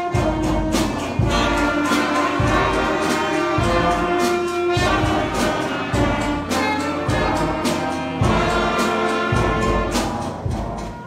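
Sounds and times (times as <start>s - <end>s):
steady drum beat: 0.0s - 11.0s
wind and brass chords: 0.0s - 11.0s.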